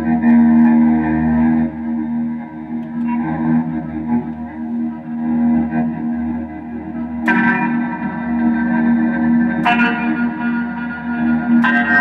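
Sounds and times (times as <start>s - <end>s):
electric guitar chords with reverb: 0.0s - 12.0s
steady low drone: 0.0s - 12.0s.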